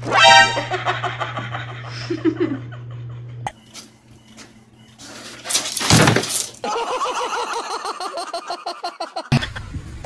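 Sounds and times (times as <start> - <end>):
boxes crashing and clattering: 5.4 - 6.6.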